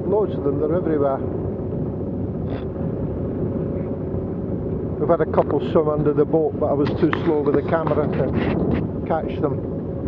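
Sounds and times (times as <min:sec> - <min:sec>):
boat engine low rumble: 0:00.0 - 0:10.0.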